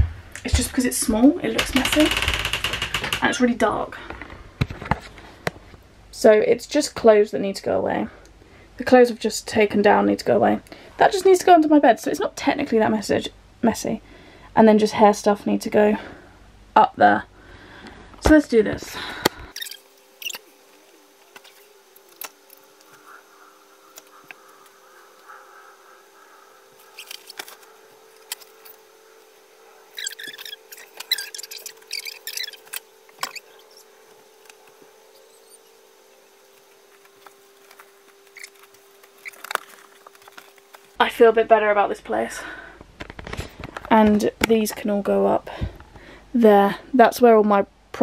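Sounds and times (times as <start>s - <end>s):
faint steady hum: 0.0s - 48.0s.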